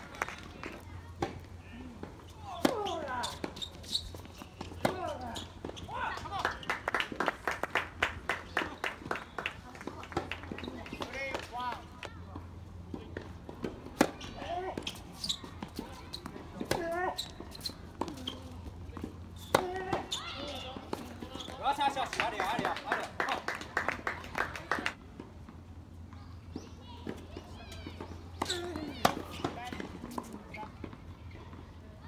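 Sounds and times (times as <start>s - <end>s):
voices chattering: 0.0s - 25.0s, 25.8s - 32.0s
tennis ball bouncing on hard court: 2.6s - 5.8s, 26.5s - 31.0s
tennis ball struck by rackets: 4.2s - 5.8s, 27.9s - 30.4s.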